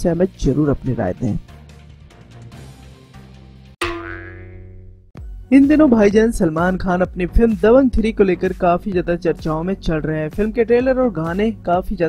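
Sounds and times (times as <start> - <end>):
ringing musical hit: 3.8 - 4.8.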